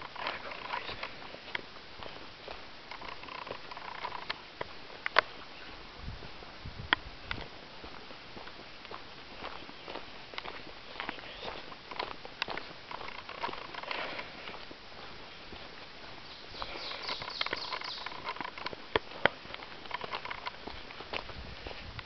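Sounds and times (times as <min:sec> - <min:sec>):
footsteps on gravel trail: 0:00.0 - 0:22.0.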